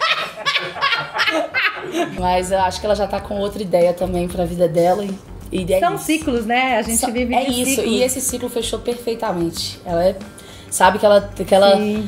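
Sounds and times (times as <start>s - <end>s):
woman laughing hard: 0.0s - 2.2s.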